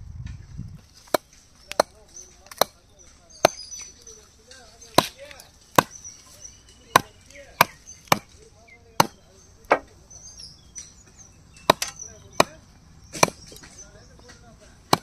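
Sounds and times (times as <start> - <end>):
knife chopping on wooden block: 9.0 - 9.9.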